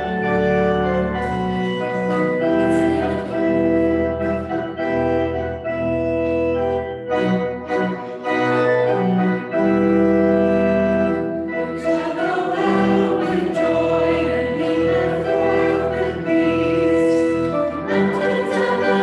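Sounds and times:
organ playing a hymn: 0.0s - 19.0s.

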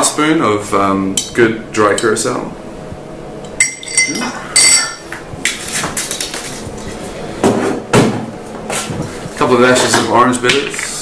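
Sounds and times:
glass bottles clinking: 3.6s - 5.1s.

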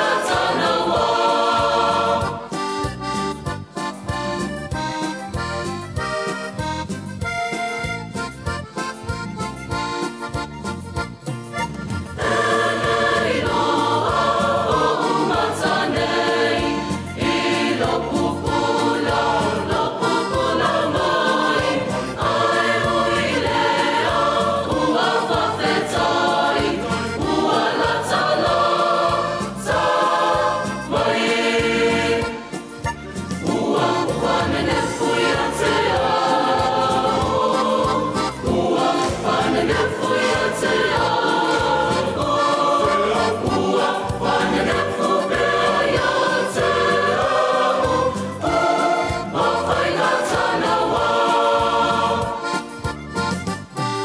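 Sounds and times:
mixed choir singing in harmony: 0.0s - 3.4s, 12.0s - 52.9s.

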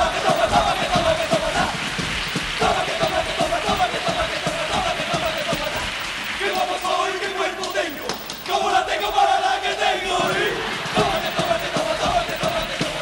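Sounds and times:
fast drum beat: 0.0s - 7.0s, 7.7s - 9.2s, 10.2s - 13.0s
chorus shouting a chant: 0.0s - 13.0s.

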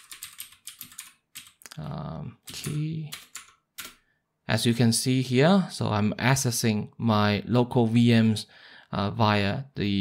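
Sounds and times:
computer keyboard keystrokes: 0.0s - 1.6s, 2.5s - 4.0s
man talking: 1.7s - 3.2s, 4.5s - 10.0s.

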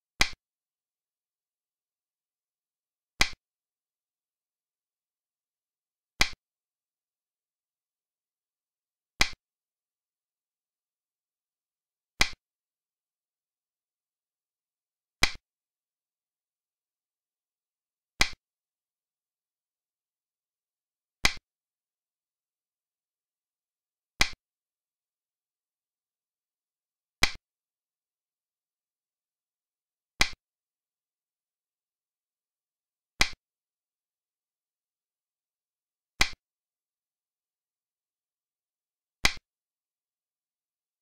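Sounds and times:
game piece clicking on board: 0.2s - 0.4s, 3.2s - 3.4s, 6.2s - 6.4s, 9.2s - 9.4s, 12.2s - 12.4s, 15.2s - 15.4s, 18.2s - 18.4s, 21.2s - 21.4s, 24.2s - 24.4s, 27.2s - 27.4s, 30.2s - 30.4s, 33.2s - 33.4s, 36.2s - 36.4s, 39.2s - 39.5s.

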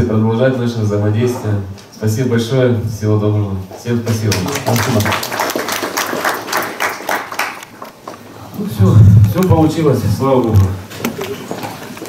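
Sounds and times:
people clapping: 4.1s - 8.3s, 10.9s - 12.0s.

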